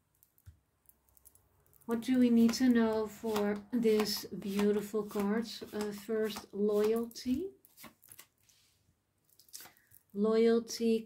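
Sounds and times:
faint clicks of handling cards: 0.2s - 10.1s.

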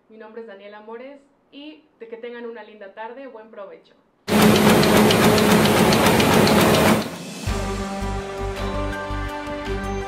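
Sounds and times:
printing press clattering: 4.3s - 7.3s
rhythmic click: 4.3s - 7.4s.

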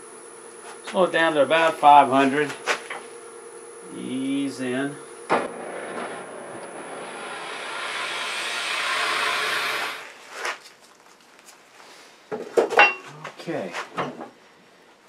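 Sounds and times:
drill bit boring into wood: 5.5s - 10.2s.

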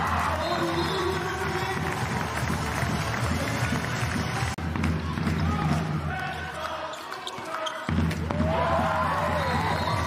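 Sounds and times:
sports hall hum: 0.0s - 10.0s
handball bouncing on court: 3.7s - 6.0s, 7.2s - 8.6s.

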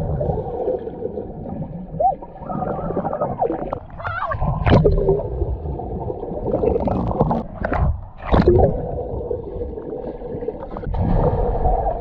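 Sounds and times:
underwater rush and bubbling: 0.0s - 12.0s.

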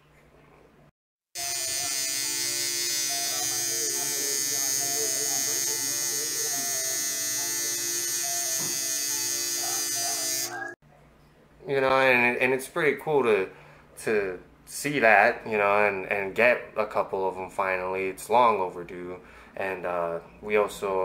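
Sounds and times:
tattoo machine buzzing: 1.4s - 10.8s
faint voices: 3.1s - 8.1s.

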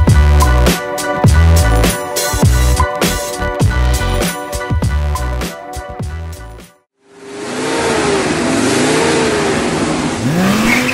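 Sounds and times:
car engine revving: 7.0s - 10.9s
loud rushing noise: 7.1s - 10.7s.

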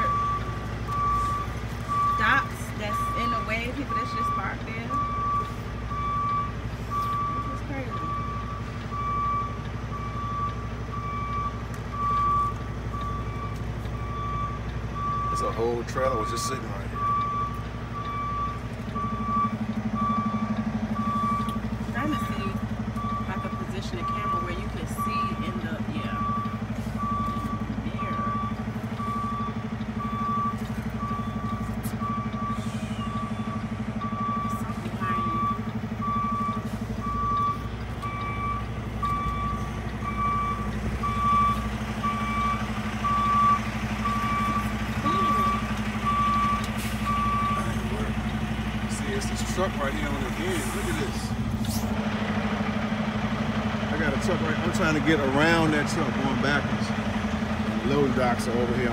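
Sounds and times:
diesel engine hum: 0.0s - 58.9s
truck back-up alarm beeping: 0.0s - 58.9s.

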